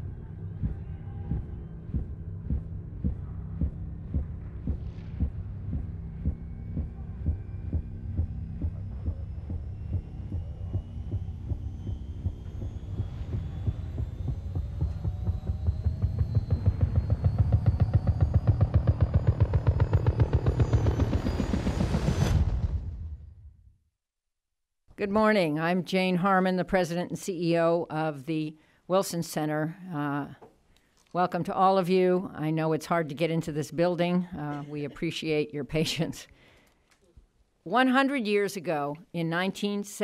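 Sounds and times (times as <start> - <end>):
heartbeat-like pulsing throb: 0.0 - 23.5
low hum: 0.0 - 23.8.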